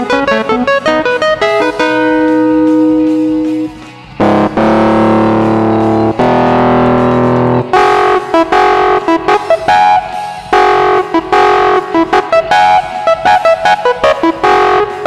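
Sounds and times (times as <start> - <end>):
distorted electric piano chords: 0.0 - 15.0
faint band recording: 0.0 - 15.0.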